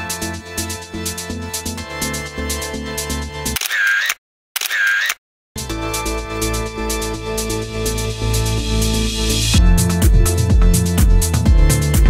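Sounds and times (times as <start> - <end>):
electronic music with steady beat: 6.4 - 12.0.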